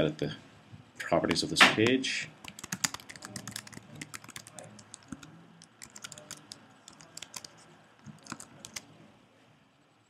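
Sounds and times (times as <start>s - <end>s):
computer keyboard typing: 2.4s - 8.9s.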